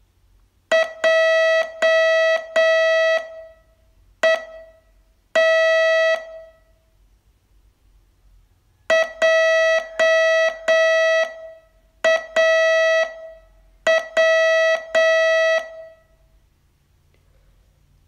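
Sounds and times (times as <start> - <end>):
morse code tone: 0.7 - 6.6, 8.9 - 16.1.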